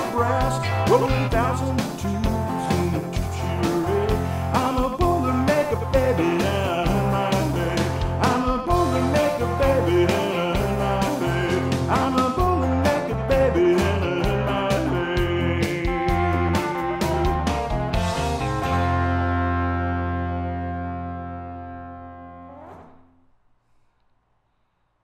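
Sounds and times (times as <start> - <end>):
drums: 0.0 - 19.4
blues-rock electric guitar: 0.0 - 22.5
bass guitar: 0.0 - 23.0.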